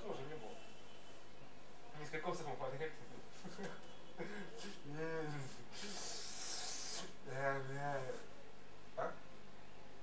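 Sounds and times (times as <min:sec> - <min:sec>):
breathy rush of air: 0:04.3 - 0:07.2.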